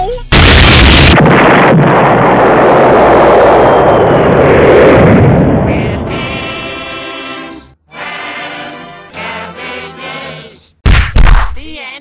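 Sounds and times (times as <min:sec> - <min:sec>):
rumble of huge explosion: 0:00.3 - 0:06.4.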